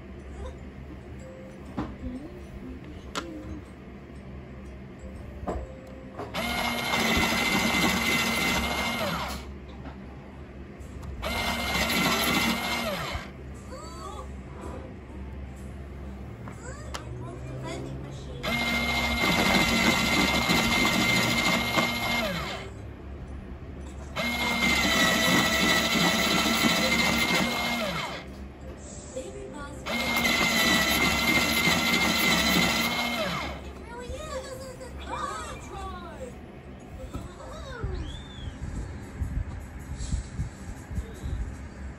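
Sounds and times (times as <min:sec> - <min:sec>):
electric pencil sharpener motor whine: 0:06.4 - 0:09.5, 0:11.2 - 0:13.3, 0:18.4 - 0:22.7, 0:24.2 - 0:28.4, 0:29.9 - 0:33.7.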